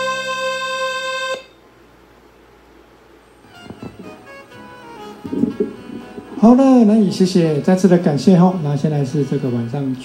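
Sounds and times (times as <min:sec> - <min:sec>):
soft knocks: 0:03.6 - 0:04.2, 0:05.2 - 0:06.6.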